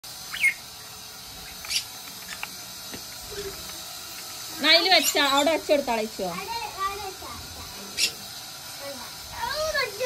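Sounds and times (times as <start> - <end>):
steady hiss: 0.0 - 10.0
high bird chirps: 0.3 - 2.4, 8.0 - 8.2.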